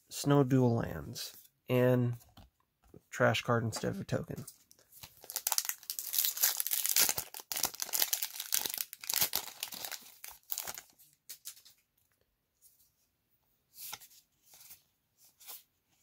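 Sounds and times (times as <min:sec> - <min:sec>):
foil wrapper tearing and crinkling: 0:05.1 - 0:11.7.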